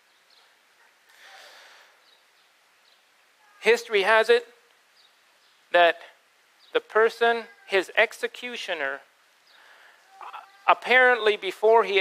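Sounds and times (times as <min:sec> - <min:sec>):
man breathing in: 0:01.1 - 0:02.0, 0:09.5 - 0:10.1.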